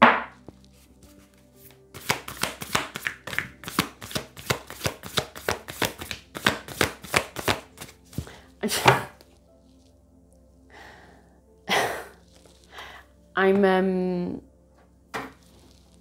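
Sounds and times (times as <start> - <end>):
cards being shuffled: 0.4 - 8.4.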